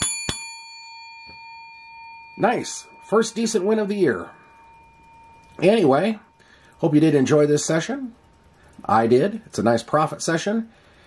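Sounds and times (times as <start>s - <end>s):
metallic bell ding: 0.0s - 7.3s.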